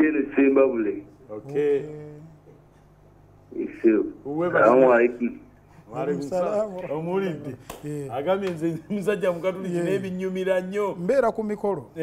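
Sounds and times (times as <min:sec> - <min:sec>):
man talking over phone line: 0:03.6 - 0:05.4.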